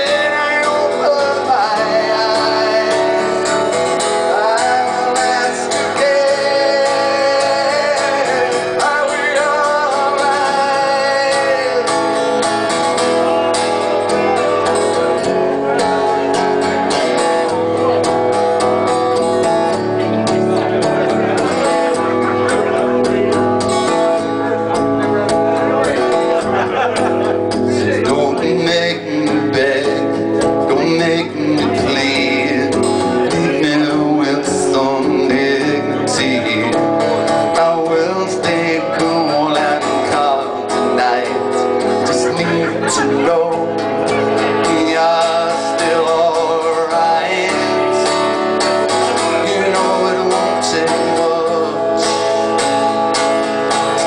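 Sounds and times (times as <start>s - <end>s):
acoustic guitar strummed hard: 0.0s - 54.0s.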